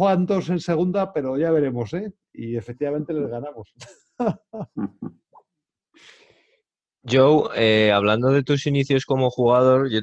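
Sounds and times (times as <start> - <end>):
man chuckling: 3.8 - 5.4.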